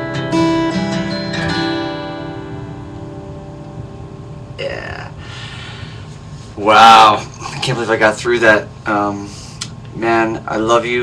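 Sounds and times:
acoustic guitar chord: 0.0s - 4.6s.

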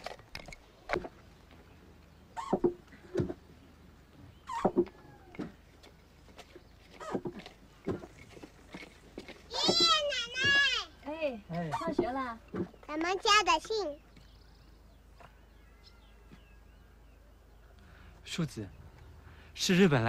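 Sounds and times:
farmyard animal calls: 2.2s - 8.2s
child shouting high-pitched: 9.5s - 11.0s.

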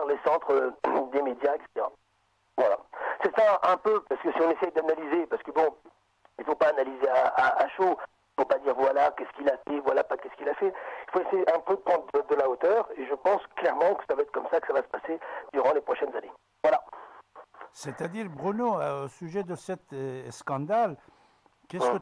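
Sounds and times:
person talking over telephone line: 0.0s - 2.0s, 2.6s - 21.0s, 21.7s - 22.0s.

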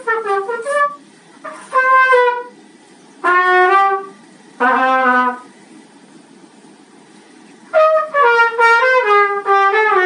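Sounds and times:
trumpet held notes: 0.0s - 2.6s, 3.2s - 5.6s, 7.7s - 10.0s.

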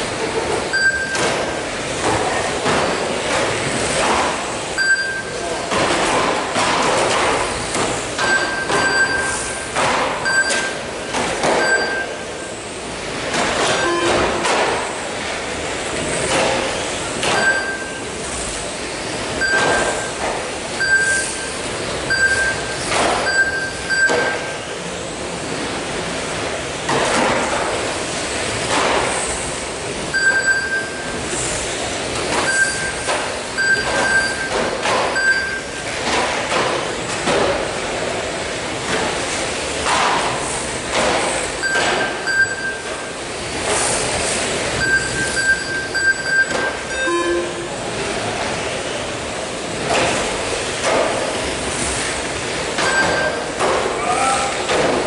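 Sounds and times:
short electronic beeps: 0.7s - 1.2s, 4.8s - 5.4s, 8.2s - 10.8s, 11.6s - 12.2s, 13.8s - 14.2s, 17.4s - 18.0s, 19.4s - 20.1s, 20.8s - 24.6s, 30.1s - 31.1s, 32.4s - 33.0s, 33.6s - 34.6s, 35.2s - 35.8s, 41.6s - 42.9s, 44.8s - 47.7s, 52.8s - 53.5s.

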